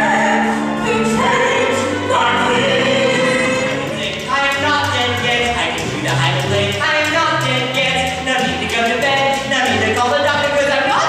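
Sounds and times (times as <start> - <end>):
chorus singing: 0.0 - 11.0
musical accompaniment: 0.0 - 11.0.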